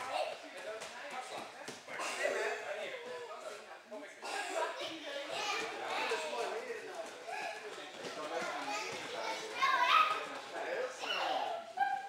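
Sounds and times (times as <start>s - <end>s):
children chattering: 4.2s - 12.0s.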